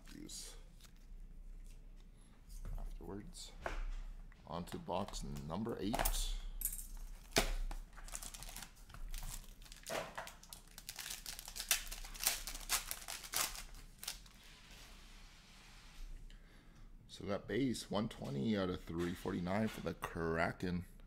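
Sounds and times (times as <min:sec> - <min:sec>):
foil pack tearing and crumpling: 0:08.0 - 0:14.3.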